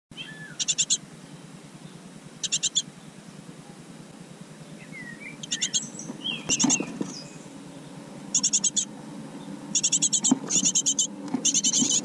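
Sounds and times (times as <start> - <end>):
great tits chattering: 0.1 - 12.0
thin sliding bird calls: 0.3 - 1.0, 5.4 - 7.4, 8.3 - 8.9, 9.7 - 12.0.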